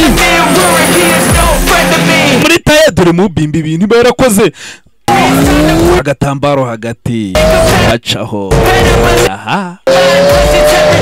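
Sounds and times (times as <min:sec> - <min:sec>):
car engine revving: 0:00.0 - 0:02.4, 0:05.1 - 0:06.0, 0:07.4 - 0:07.9, 0:08.5 - 0:09.3, 0:09.9 - 0:11.0.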